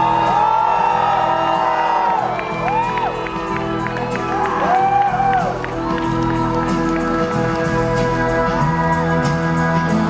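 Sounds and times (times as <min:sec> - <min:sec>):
live rock band music: 0:00.0 - 0:10.0.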